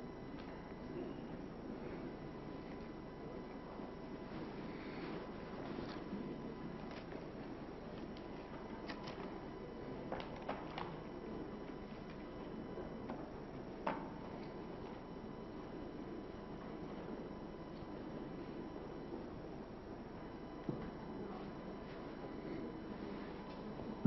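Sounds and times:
low background hum: 0.0 - 24.0.

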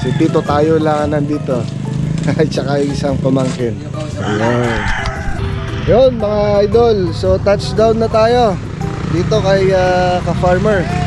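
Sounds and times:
rooster crowing: 0.0 - 0.6, 4.1 - 5.7.

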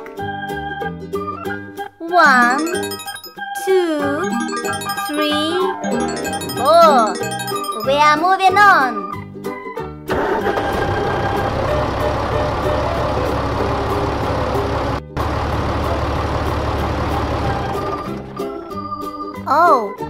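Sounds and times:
children's music: 0.0 - 9.8, 18.4 - 20.0
cartoon tractor engine running: 2.3 - 3.4, 4.2 - 8.2, 10.1 - 18.8.

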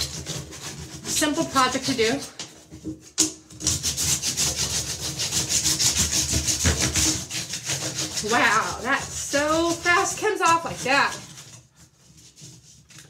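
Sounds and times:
plastic hanger scraping bathtub: 0.0 - 13.0.

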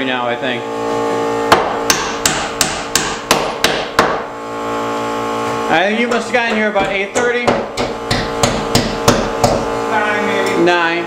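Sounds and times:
steady background hum: 0.0 - 11.0
hammer nailing into wood: 1.5 - 4.3, 6.1 - 9.7.

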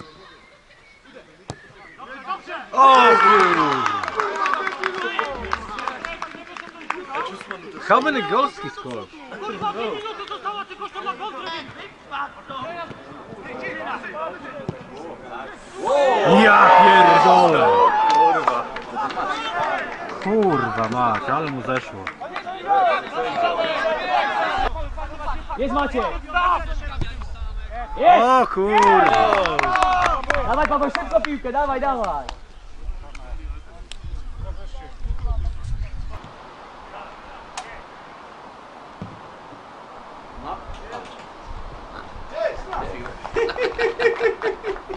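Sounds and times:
men calling out: 2.3 - 6.2, 15.8 - 20.8
loud shout: 2.7 - 6.0, 15.8 - 20.8, 27.9 - 30.5
sharp thump: 39.0 - 39.3.

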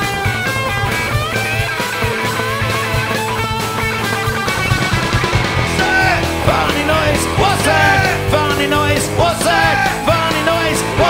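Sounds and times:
electric guitar lines: 0.0 - 11.0
steady drum beat: 0.0 - 11.0.

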